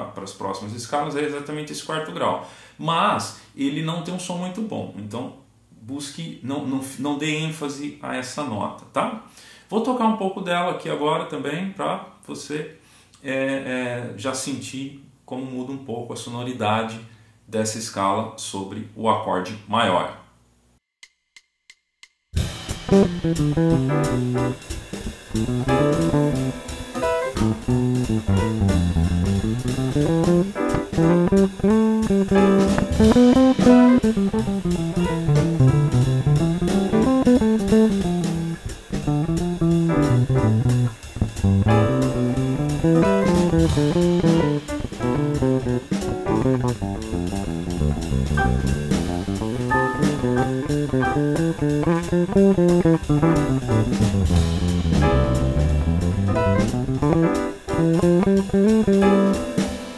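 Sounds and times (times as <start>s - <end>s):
electric bass improvising: 22.4s - 59.6s
drum kit: 22.4s - 59.9s.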